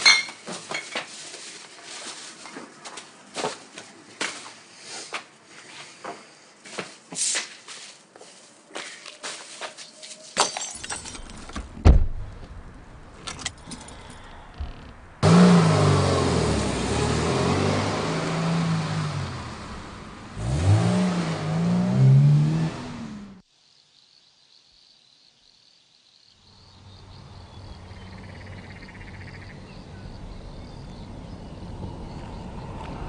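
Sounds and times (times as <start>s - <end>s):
car engine revving hard: 15.2s - 23.4s.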